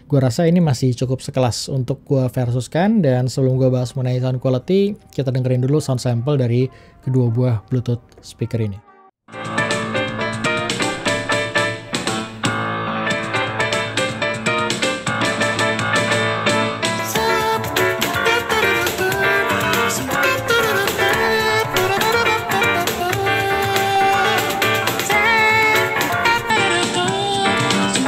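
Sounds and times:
music from small speaker: 0:09.3 - 0:28.0.

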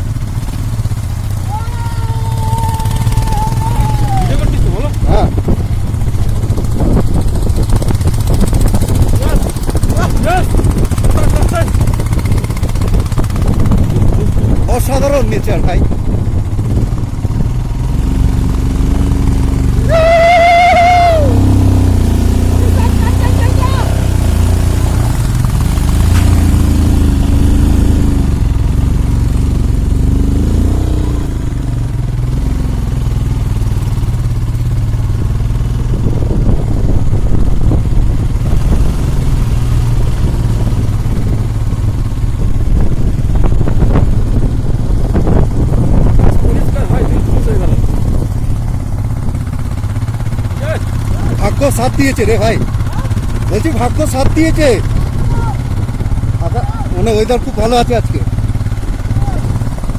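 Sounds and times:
motorcycle engine running: 0:00.0 - 0:59.9
rough rushing noise: 0:00.0 - 0:59.9.

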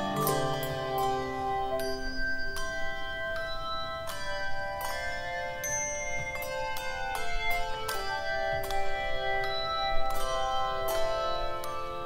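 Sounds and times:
handbells ringing: 0:00.0 - 0:12.0.

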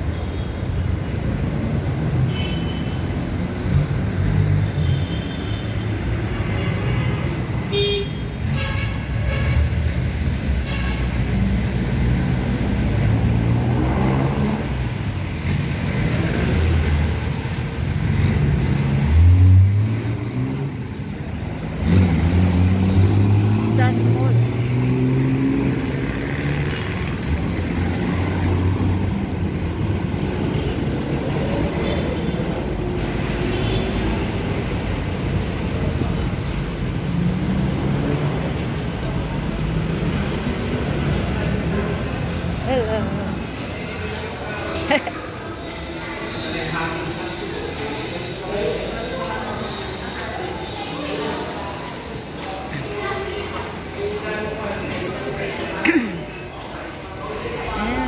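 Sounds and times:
vehicles passing: 0:00.0 - 0:58.0
voices of passers-by: 0:00.0 - 0:58.0.

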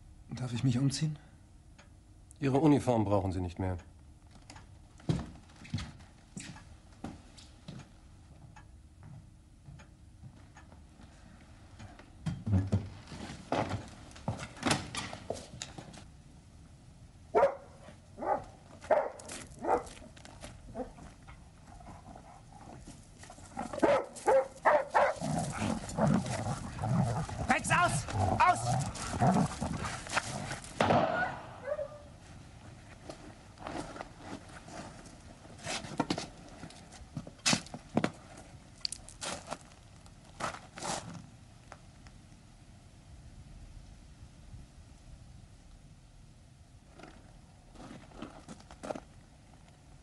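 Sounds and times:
dog barking: 0:17.3 - 0:20.0, 0:23.8 - 0:25.3, 0:31.1 - 0:32.1
commotion: 0:25.0 - 0:32.1.

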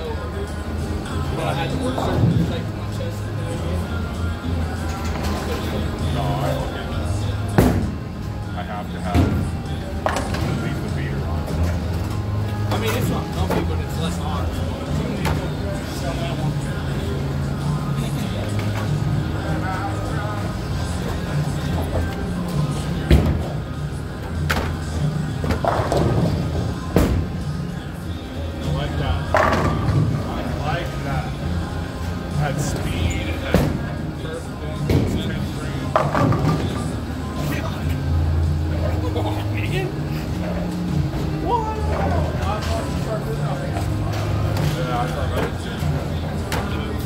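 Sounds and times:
background music: 0:00.0 - 0:47.0
voices: 0:00.0 - 0:47.0
bowling balls rolling: 0:24.3 - 0:27.5, 0:29.2 - 0:30.6.

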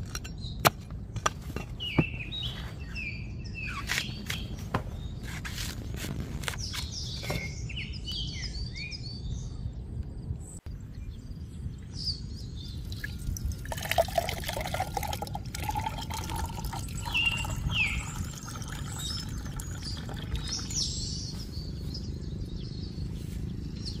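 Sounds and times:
birds chirping: 0:00.1 - 0:24.0
water pouring into a glass: 0:12.9 - 0:20.7.

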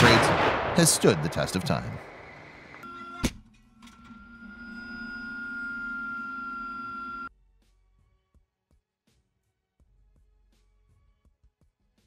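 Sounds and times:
tank gunfire: 0:00.0 - 0:02.6
sharp crack: 0:00.0 - 0:02.8
droning hum with high whine: 0:02.3 - 0:07.3.

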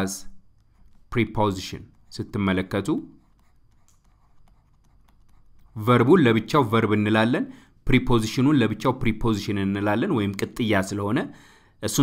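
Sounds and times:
stylus scratching on tablet: 0:00.3 - 0:06.6.

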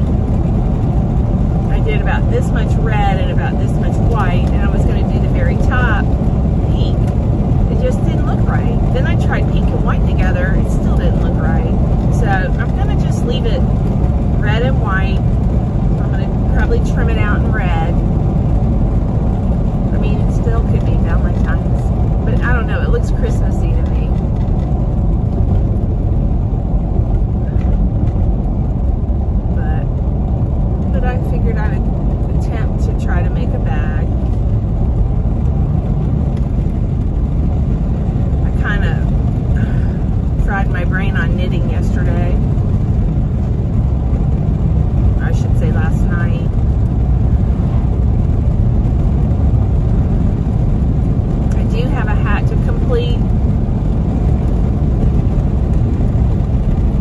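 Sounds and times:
low road and engine rumble: 0:00.0 - 0:57.0
woman talking: 0:01.7 - 0:07.1, 0:07.7 - 0:13.7, 0:14.4 - 0:15.2, 0:16.0 - 0:18.0, 0:19.9 - 0:24.2, 0:29.6 - 0:29.9, 0:30.9 - 0:34.1, 0:38.4 - 0:42.4, 0:45.2 - 0:46.5, 0:51.5 - 0:53.2.

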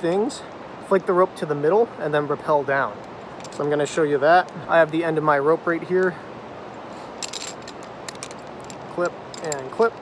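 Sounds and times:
carabiners clicking: 0:03.4 - 0:03.8, 0:07.2 - 0:10.0.

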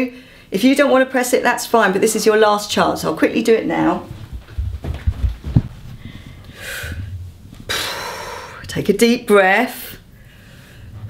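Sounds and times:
thumps and shuffling of person moving: 0:03.6 - 0:07.7
sharp intake of breath: 0:06.1 - 0:08.6.

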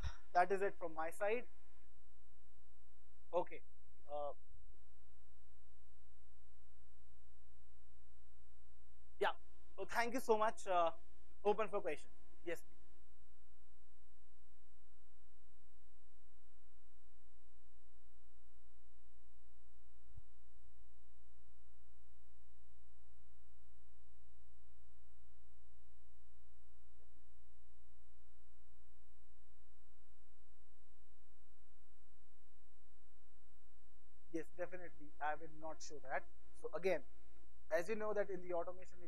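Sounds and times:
electrical mains hum: 0:00.0 - 0:39.0.

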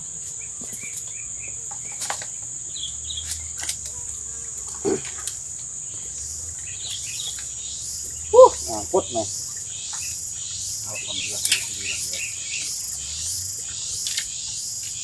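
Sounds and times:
insects buzzing: 0:00.0 - 0:15.0
bird chirps: 0:00.5 - 0:03.6, 0:05.8 - 0:15.0.

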